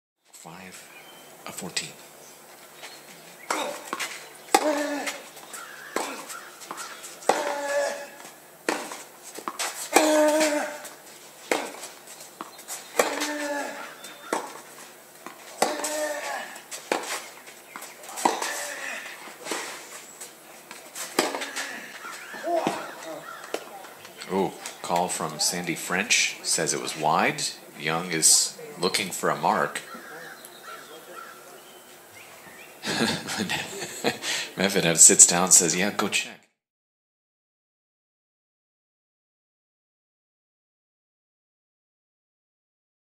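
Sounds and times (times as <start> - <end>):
tennis racket hitting ball: 3.4 - 20.0, 20.6 - 24.0
tennis player grunting: 3.5 - 12.0, 13.0 - 17.2, 18.0 - 20.0, 21.0 - 24.6.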